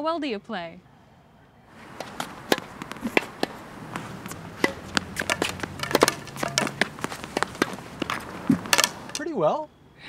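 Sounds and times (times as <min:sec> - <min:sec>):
balls bouncing on hard court: 0:01.8 - 0:09.2
tennis racket striking balls: 0:01.8 - 0:09.3.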